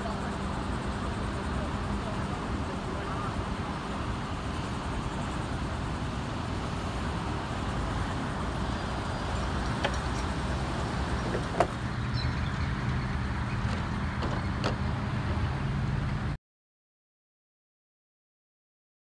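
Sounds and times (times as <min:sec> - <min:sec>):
road traffic engine hum: 0:00.0 - 0:16.4.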